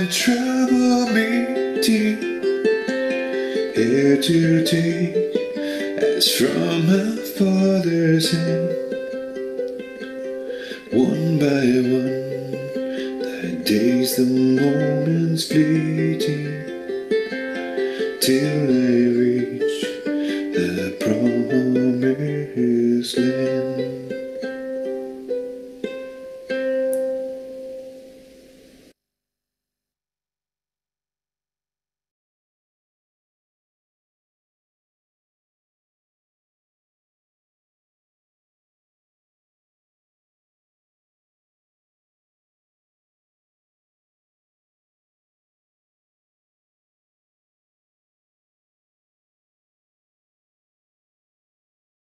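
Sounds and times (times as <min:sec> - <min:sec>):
man singing a hymn: 0:00.0 - 0:02.5, 0:03.6 - 0:08.9, 0:10.6 - 0:16.7, 0:17.9 - 0:24.2
ukulele strumming: 0:00.0 - 0:28.9.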